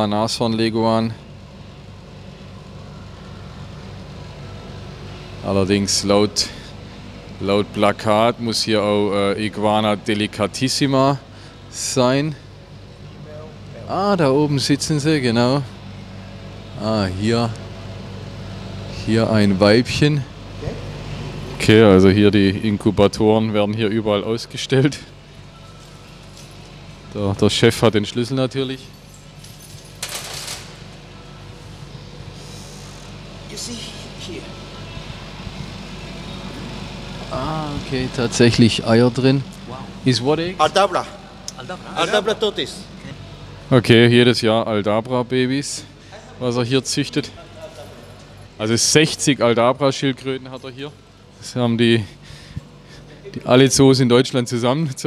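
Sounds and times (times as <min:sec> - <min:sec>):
low background hum and rumble: 0:00.0 - 0:55.0
keys jangling on metal: 0:28.8 - 0:30.9.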